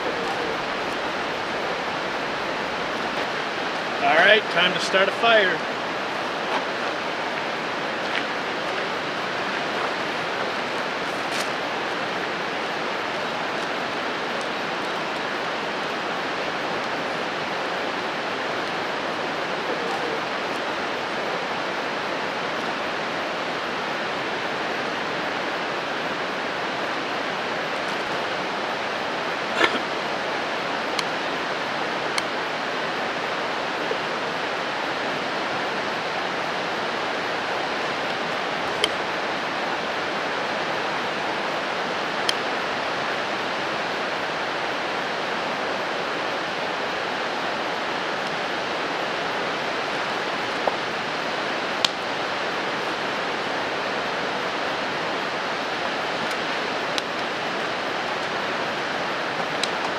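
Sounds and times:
river rushing: 0.0s - 59.9s.

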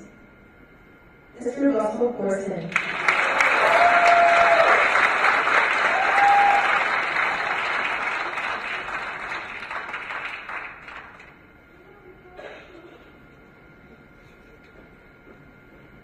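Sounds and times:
audience applause: 2.7s - 11.4s
cheering shouts: 3.1s - 5.0s, 5.6s - 7.2s.

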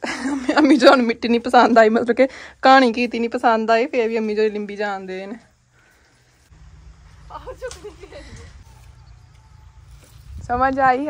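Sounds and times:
woman speaking: 0.6s - 5.4s, 10.4s - 11.0s
wind buffeting microphone: 6.8s - 11.0s.

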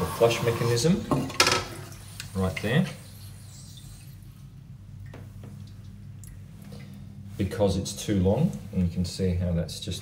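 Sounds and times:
steady low hum: 0.8s - 10.0s.

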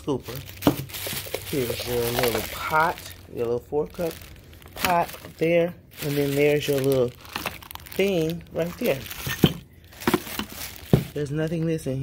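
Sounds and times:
plastic bag rustling: 0.1s - 12.0s.

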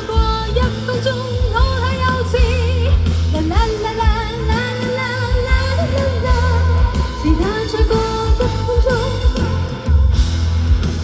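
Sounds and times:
woman singing la la la: 0.0s - 9.8s
drums: 0.0s - 11.0s
live band playing: 0.0s - 11.0s
steady bass: 0.0s - 11.0s.

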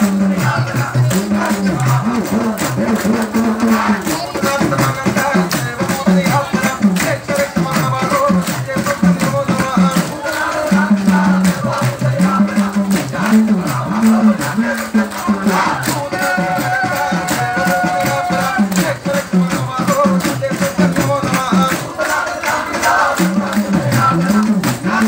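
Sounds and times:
devotional chanting: 0.0s - 25.0s
rattling jingling percussion: 0.0s - 25.0s.

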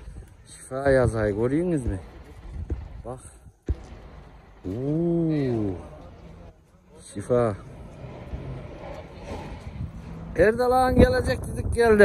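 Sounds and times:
outdoor background noise: 0.0s - 12.0s
truck engine humming: 1.3s - 11.1s.

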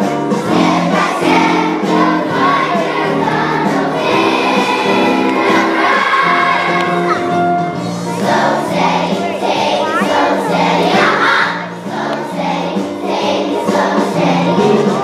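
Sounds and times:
children's choir singing: 0.0s - 15.0s
instrumental accompaniment: 0.0s - 15.0s.

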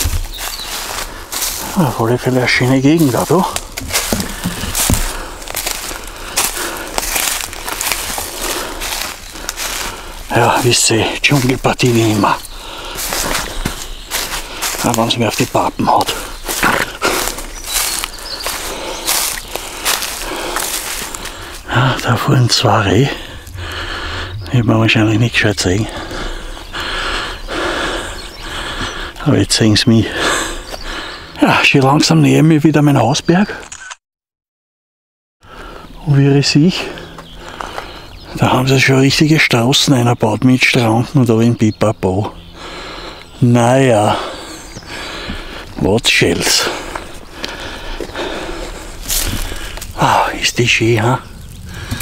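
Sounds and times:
footsteps crunching dry leaves: 0.0s - 26.8s, 44.2s - 52.0s.

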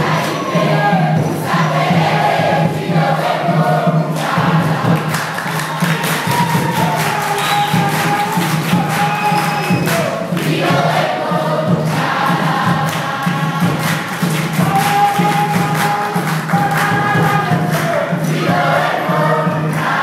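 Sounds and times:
congregation singing: 0.0s - 20.0s
steady percussive beat: 0.0s - 20.0s.

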